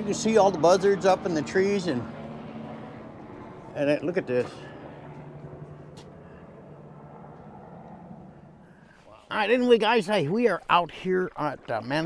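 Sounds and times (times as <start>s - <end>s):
distant motor humming: 0.0s - 9.0s.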